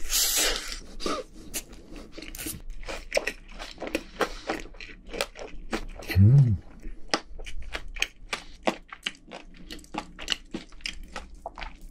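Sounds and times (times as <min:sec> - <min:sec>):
chewing crunchy food: 0:00.4 - 0:11.9.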